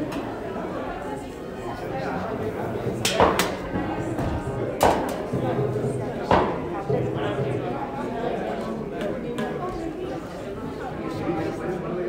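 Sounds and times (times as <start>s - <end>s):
murmur of people talking: 0.0s - 12.0s.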